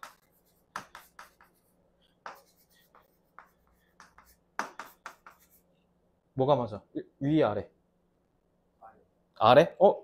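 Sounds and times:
chalk writing on a chalkboard: 0:00.0 - 0:05.7.

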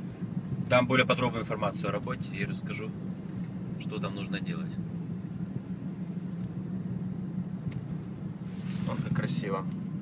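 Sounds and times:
car interior drone: 0:00.0 - 0:10.0.

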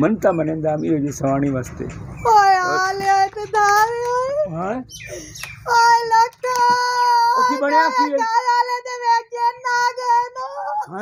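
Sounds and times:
woman wailing: 0:06.6 - 0:11.0.

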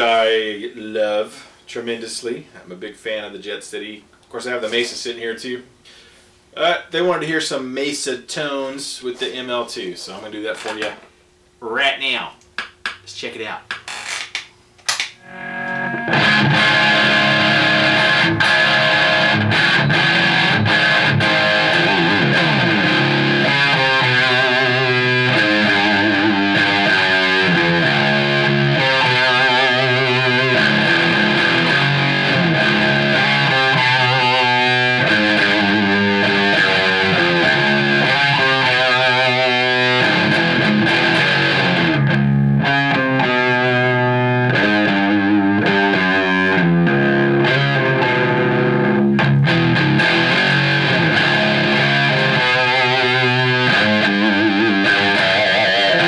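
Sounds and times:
distorted electric guitar riffs: 0:14.9 - 0:56.0.

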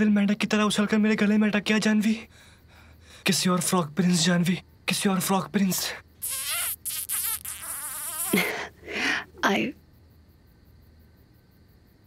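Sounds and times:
man making smooching sound: 0:06.2 - 0:08.6.

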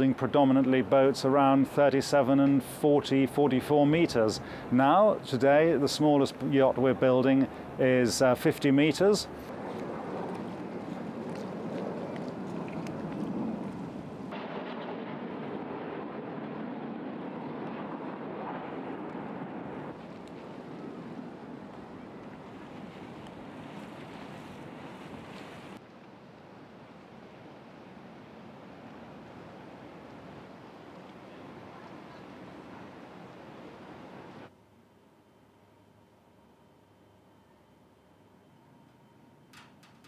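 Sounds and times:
wind: 0:00.0 - 0:40.0
water noise: 0:02.6 - 0:14.4, 0:17.9 - 0:34.5.

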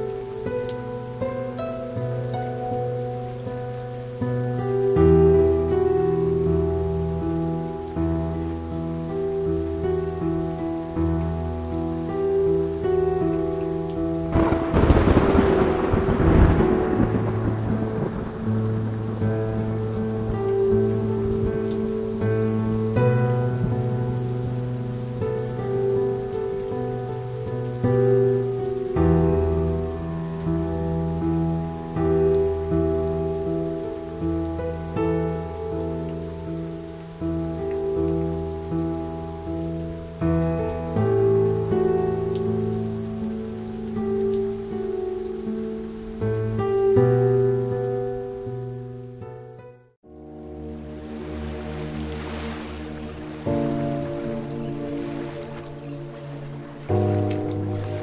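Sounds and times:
slow ambient music: 0:00.0 - 0:58.0
steady rain: 0:00.0 - 0:58.0
thunder clap rumbling: 0:14.3 - 0:21.8.

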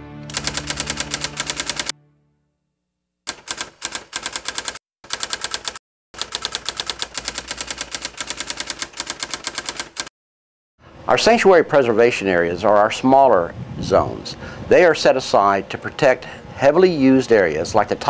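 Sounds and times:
typewriter keystrokes clicking: 0:00.3 - 0:01.9, 0:03.3 - 0:10.1.

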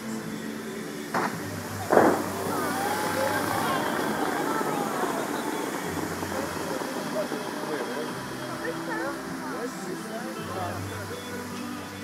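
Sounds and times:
faint voices: 0:00.0 - 0:12.0
fountain water rushing: 0:00.0 - 0:12.0.

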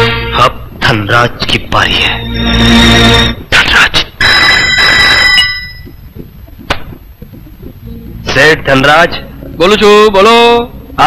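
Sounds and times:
telephone ringing: 0:04.2 - 0:06.0.

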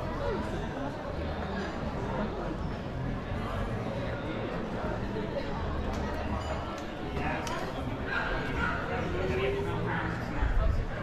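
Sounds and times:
background talk: 0:00.0 - 0:11.0.

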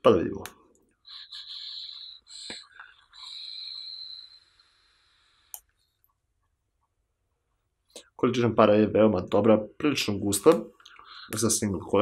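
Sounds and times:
hissing whistling air draw: 0:01.0 - 0:05.3.

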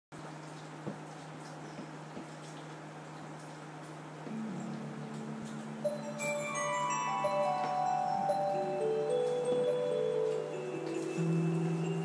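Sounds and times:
keyboard ballad backing track: 0:04.3 - 0:12.0.

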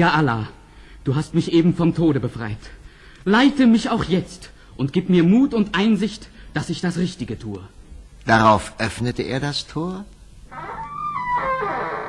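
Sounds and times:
iron gate creaking open: 0:10.5 - 0:12.0.

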